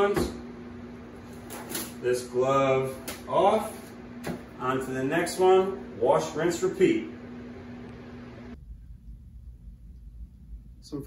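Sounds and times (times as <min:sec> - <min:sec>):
box fans running: 0:00.0 - 0:11.0
low rumble: 0:07.1 - 0:11.0.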